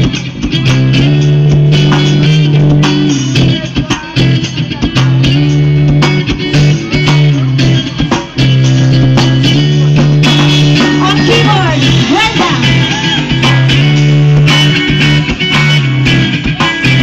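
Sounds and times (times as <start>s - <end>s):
live band playing loud music: 0.0s - 17.0s
strong bass line: 0.0s - 17.0s.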